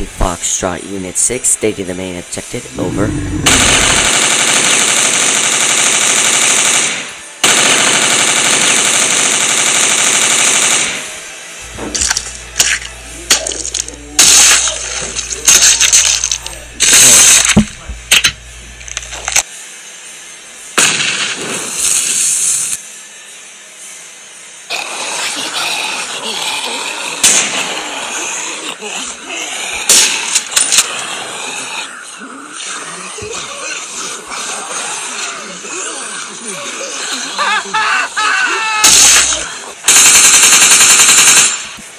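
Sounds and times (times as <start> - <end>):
low hum: 0.0 - 5.7, 11.0 - 19.5
automatic gunfire: 3.4 - 11.0, 38.8 - 41.8.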